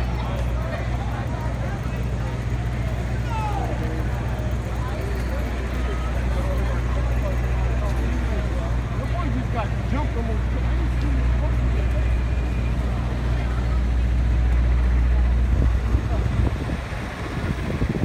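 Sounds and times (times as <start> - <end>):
passers-by talking: 0.0 - 18.0
traffic hum: 0.0 - 18.0.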